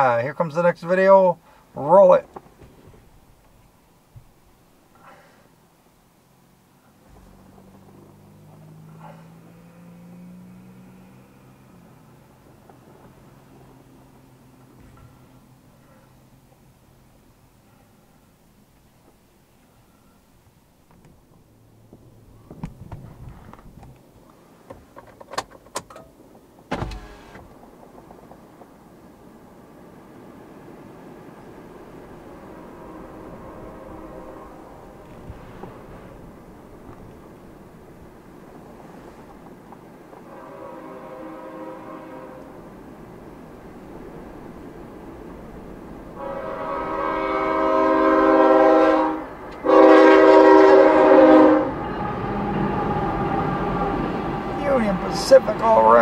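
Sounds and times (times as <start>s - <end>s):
freight cars rumbling past: 0.0s - 25.0s, 25.6s - 56.0s
train air horn blasts: 32.5s - 35.1s, 40.2s - 42.6s, 46.2s - 54.6s.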